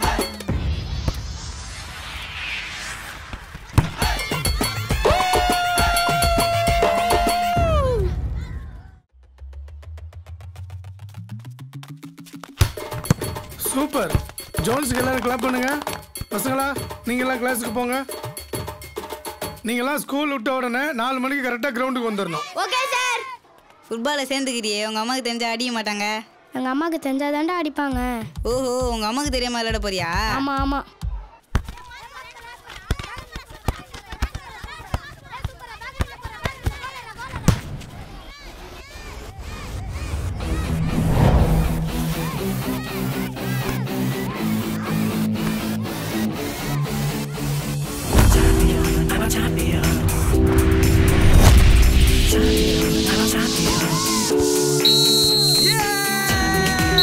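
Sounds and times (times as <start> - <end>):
loud noisy sound: 0.4 - 4.2
football being kicked: 3.7 - 4.1, 37.4 - 37.8
children shouting at play: 22.2 - 23.7, 31.0 - 40.8, 42.2 - 45.9
low drone: 40.0 - 42.4.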